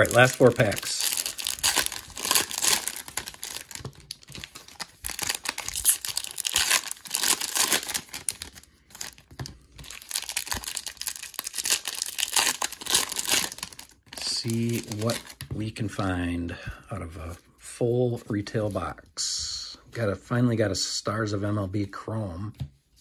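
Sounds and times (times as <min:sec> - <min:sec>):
foil wrappers torn and crinkled: 0:00.0 - 0:15.4.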